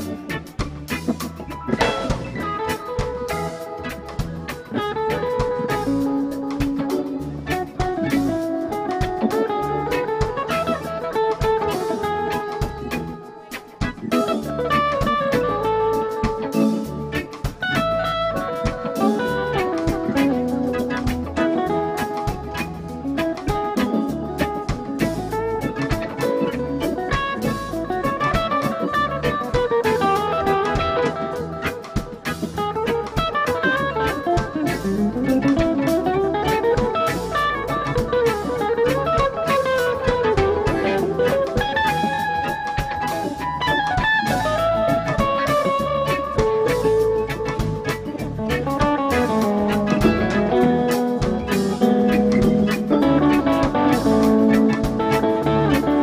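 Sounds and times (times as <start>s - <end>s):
bass: 0.0s - 56.0s
drum kit: 0.0s - 56.0s
lead guitar bending notes: 0.0s - 56.0s.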